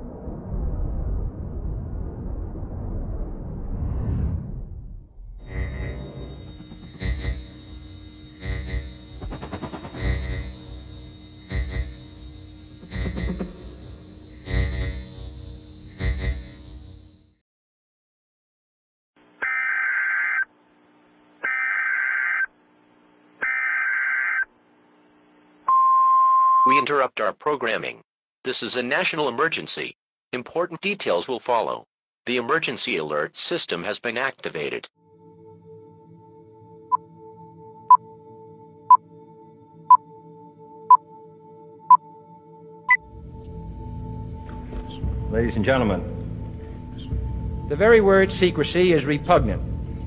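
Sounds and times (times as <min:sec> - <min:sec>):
deep low rumble: 0:00.0 - 0:15.8
data tone bursts: 0:05.4 - 0:13.9
steady attention signal tone: 0:05.4 - 0:17.2.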